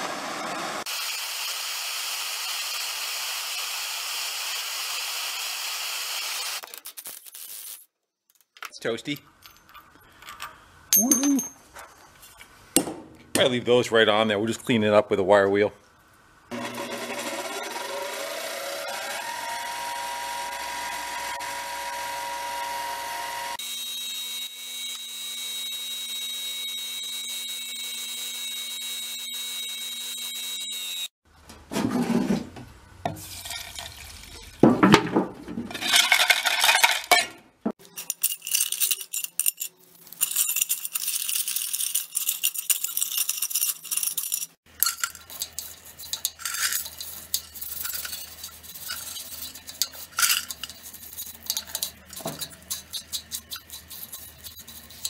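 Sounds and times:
metal balls clinking in liquid: 0:08.3 - 0:11.7, 0:33.2 - 0:34.5, 0:35.8 - 0:55.0
bench grinder running: 0:16.5 - 0:31.1.

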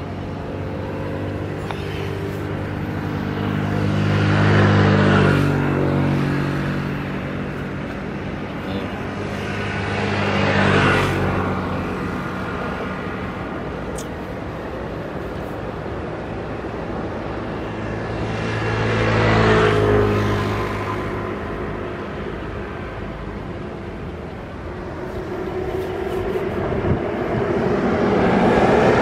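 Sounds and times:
vehicle approaching: 0:00.0 - 0:29.0
vehicle passing by: 0:00.0 - 0:29.0.

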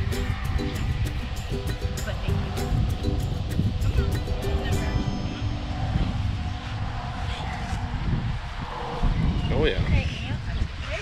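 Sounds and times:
music with held notes: 0:00.0 - 0:06.9.

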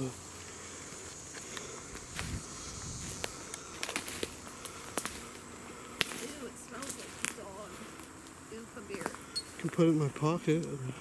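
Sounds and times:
high-pitched insect hum: 0:00.0 - 0:11.0
footsteps on pine needles and twigs: 0:00.2 - 0:10.2.

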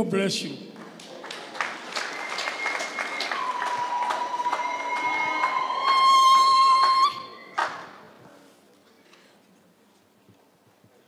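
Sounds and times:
congregation clapping: 0:00.7 - 0:08.0.

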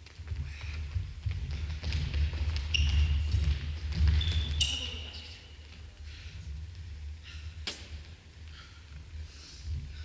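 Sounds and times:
low hum of large hall: 0:00.0 - 0:10.0.

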